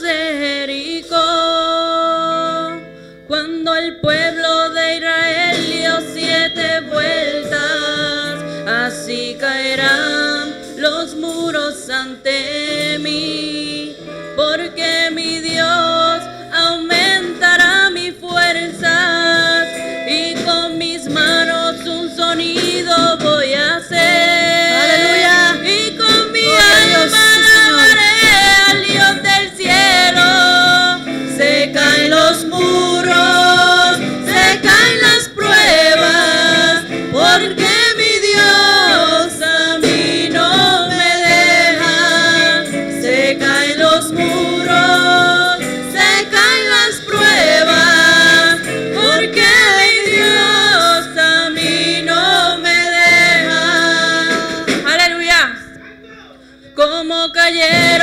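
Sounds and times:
women singing into microphones: 0.0 - 55.7, 56.8 - 58.0
live instrumental accompaniment: 0.0 - 58.0.

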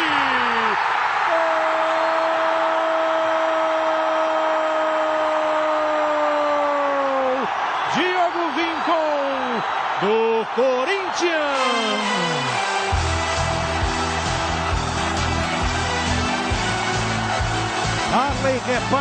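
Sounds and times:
commentator's long goal shout: 0.0 - 12.6
stadium crowd noise: 0.0 - 19.0.

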